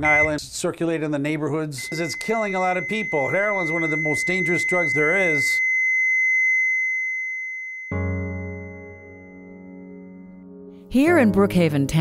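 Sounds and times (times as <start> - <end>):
heart monitor flatline beep: 0.0 - 0.4, 1.8 - 6.9.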